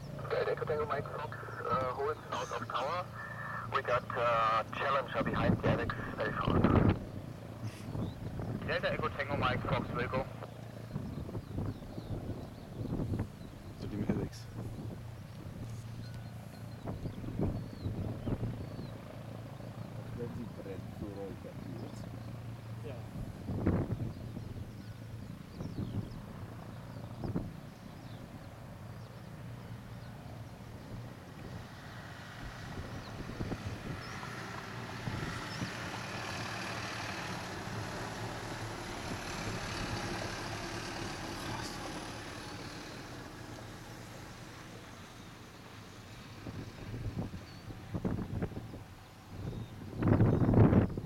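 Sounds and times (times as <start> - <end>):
jet engine rumble with whine: 0.0 - 51.0
wind gusts: 0.0 - 51.0.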